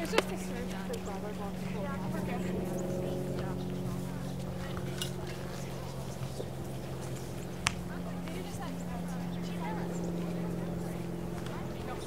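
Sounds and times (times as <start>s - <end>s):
faint distant voices: 0.0s - 12.0s
low mechanical engine hum: 0.0s - 12.0s.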